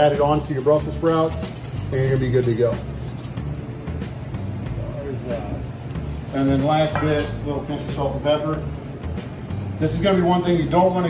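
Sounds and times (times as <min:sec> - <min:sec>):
whisk stroking metal bowl: 0:00.0 - 0:03.7
background music: 0:00.0 - 0:11.0
steady low hum: 0:00.0 - 0:11.0.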